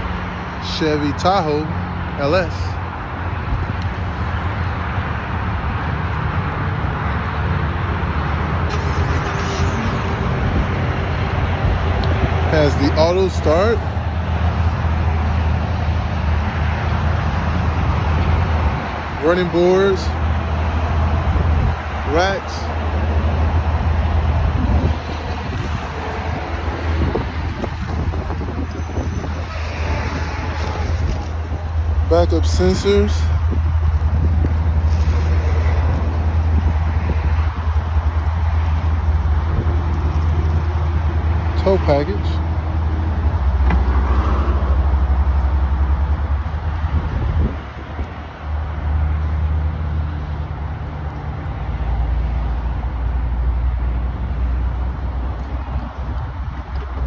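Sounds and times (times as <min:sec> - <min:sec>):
vehicle rumble and hiss: 0:00.0 - 0:57.0
car engine idling: 0:08.6 - 0:18.1.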